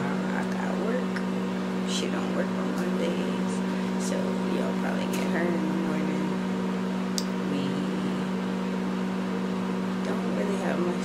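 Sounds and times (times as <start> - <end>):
microwave oven humming: 0.0 - 11.0.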